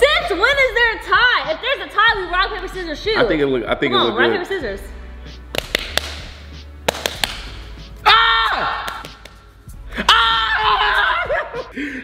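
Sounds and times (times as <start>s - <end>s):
fists tapping open palms: 5.4s - 8.0s, 8.8s - 9.5s.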